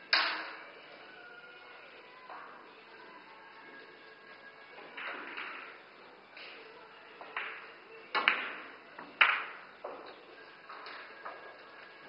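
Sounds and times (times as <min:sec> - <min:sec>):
billiard balls clicking: 0:04.8 - 0:06.6, 0:07.2 - 0:12.0
cue striking ball: 0:07.2 - 0:09.6.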